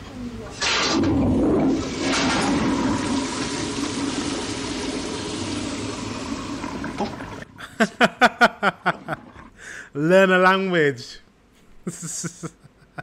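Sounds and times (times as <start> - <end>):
toilet flushing: 0.5 - 7.8, 8.6 - 9.6
people laughing: 7.6 - 9.5, 11.8 - 13.0.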